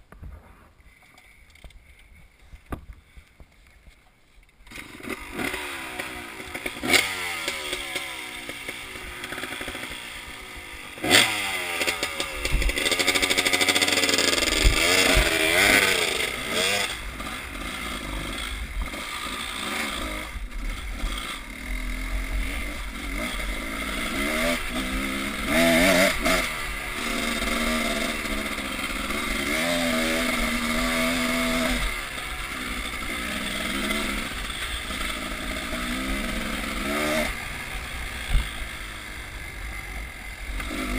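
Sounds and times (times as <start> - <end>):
motorcycle engine revving: 4.6 - 40.9
bike knocking and rattling: 11.0 - 19.3.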